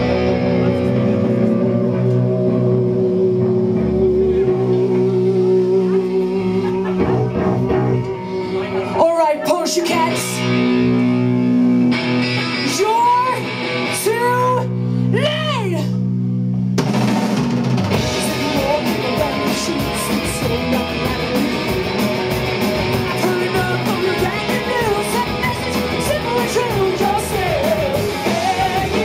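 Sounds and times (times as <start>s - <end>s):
ringing electric guitar chord: 0.0s - 9.0s
distorted guitars: 0.0s - 29.0s
drums: 0.0s - 29.0s.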